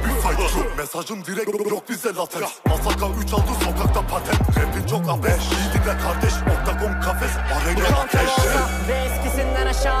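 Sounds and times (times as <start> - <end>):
hip hop beat with sliding bass: 0.0 - 10.0
rapped vocal: 0.0 - 10.0.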